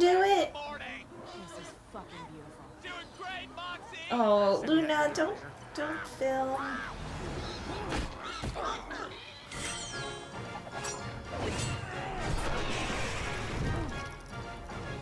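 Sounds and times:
cartoon background music: 0:06.7 - 0:15.0
crash sound effects: 0:11.4 - 0:14.0.

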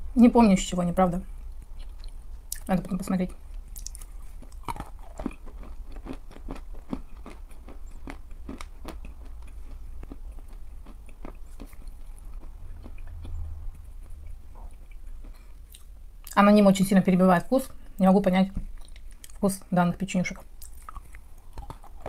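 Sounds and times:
chewing chalk crunches: 0:03.8 - 0:13.4, 0:20.6 - 0:22.0.

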